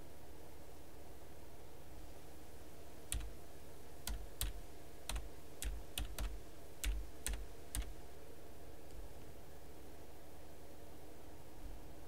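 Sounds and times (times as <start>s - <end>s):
low background hum: 0.0s - 12.0s
computer keyboard key clicks: 3.1s - 3.3s, 4.1s - 7.9s.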